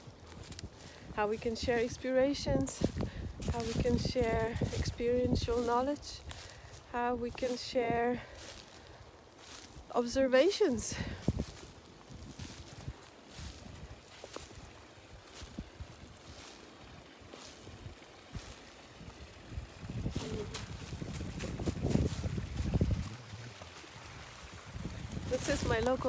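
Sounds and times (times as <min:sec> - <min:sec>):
brook water running: 0:00.0 - 0:26.0
low rumbling: 0:18.4 - 0:26.0.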